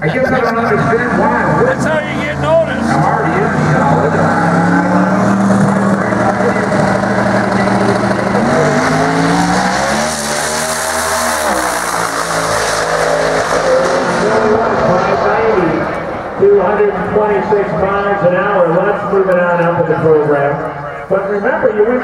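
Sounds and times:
drag car engine revving: 0.0 - 20.4.

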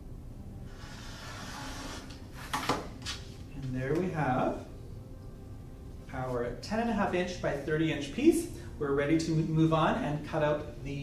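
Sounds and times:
rotary cutter rasping through canvas: 0.7 - 2.6.

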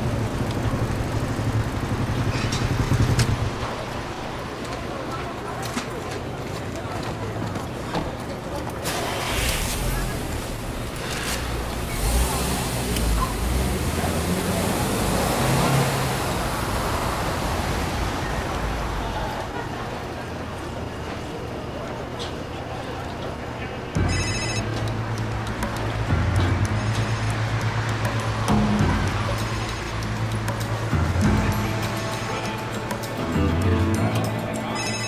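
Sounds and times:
vehicle engine and road noise: 0.0 - 35.0
steady low drone: 23.9 - 35.0
phone ringtone tones: 24.0 - 24.8, 34.6 - 35.0.

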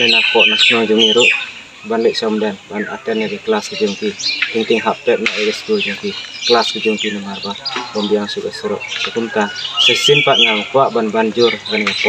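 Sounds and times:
bird chirping: 0.0 - 12.0
man speaking: 0.0 - 12.0.

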